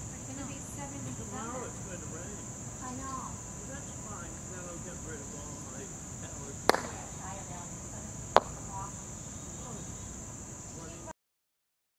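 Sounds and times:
high-pitched insect drone: 0.0s - 11.1s
mallet knocking ball: 6.7s - 7.0s, 8.4s - 8.7s
bird chirps: 8.2s - 10.9s.

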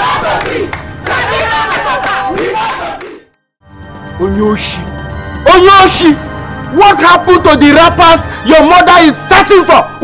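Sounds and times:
women shouting and chanting: 0.0s - 3.2s.

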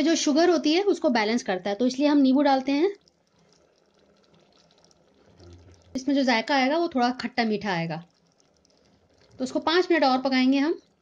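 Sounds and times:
syrup bubbling in a pot: 0.0s - 11.0s.

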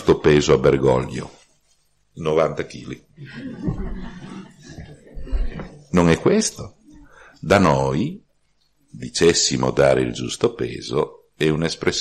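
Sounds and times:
audience laughing: 3.2s - 5.8s.

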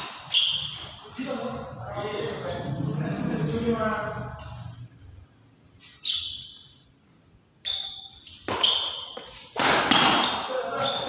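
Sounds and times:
shoes squeaking on court floor: 0.0s - 1.7s, 5.8s - 11.0s
rackets hitting shuttlecock: 7.6s - 11.0s.

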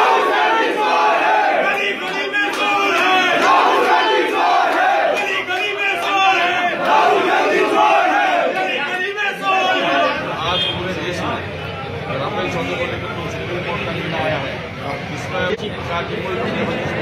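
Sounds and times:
crowd of men shouting slogans: 0.0s - 10.3s.

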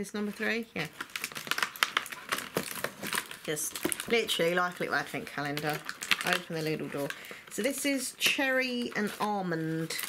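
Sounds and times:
cardboard crinkling and rustling: 0.2s - 10.0s.

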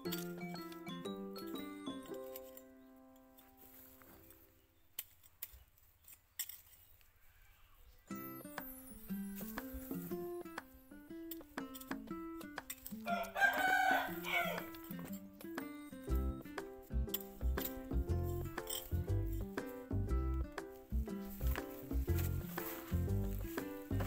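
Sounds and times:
plucked background music: 0.0s - 3.9s, 8.1s - 24.0s
rooster crowing: 13.0s - 14.8s
deep bass line: 17.0s - 24.0s.

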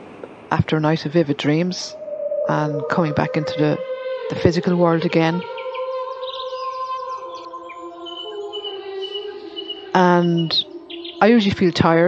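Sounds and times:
ambient drone music: 1.1s - 12.0s.

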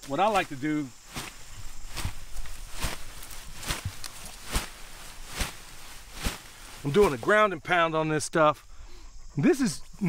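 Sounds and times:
root clump thudding on ground: 0.0s - 7.2s
rustling leaves and dirt: 0.0s - 8.5s.

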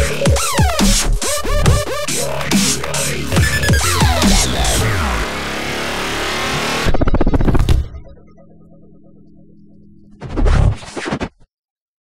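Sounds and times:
electronic intro music: 0.0s - 10.2s.

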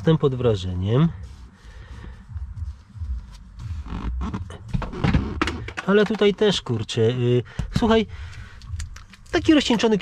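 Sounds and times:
gloved hand rubbing leather seat: 0.0s - 6.5s
low rumble: 1.2s - 5.8s.

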